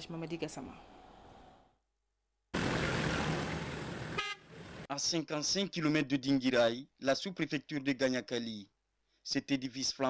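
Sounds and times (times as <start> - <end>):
vehicles driving on dirt track: 2.6 - 4.9
short horn toot: 4.2 - 4.5.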